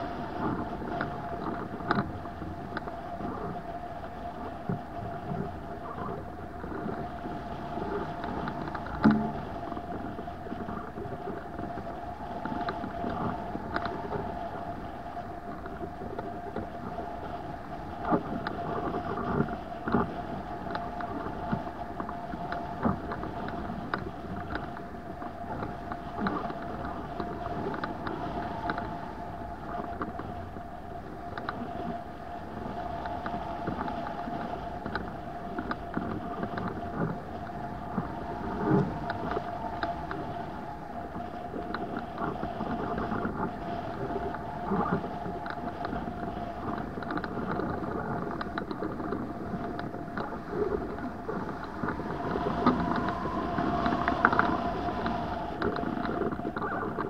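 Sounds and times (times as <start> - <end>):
wind rushing and buffeting: 0.0 - 57.0.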